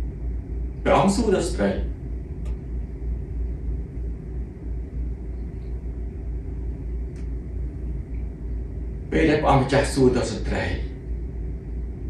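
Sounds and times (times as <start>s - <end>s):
steady low rumble: 0.0s - 12.0s
faint click: 2.4s - 2.6s, 7.1s - 7.4s.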